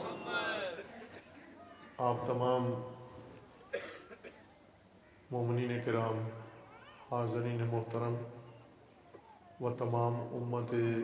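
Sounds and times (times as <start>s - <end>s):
person coughing: 3.7s - 4.5s.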